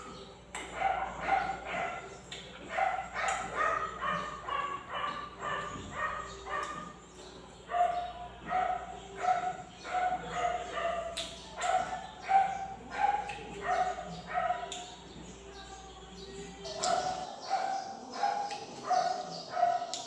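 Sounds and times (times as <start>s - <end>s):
dog barking: 0.6s - 7.0s, 7.7s - 14.8s, 16.7s - 20.0s.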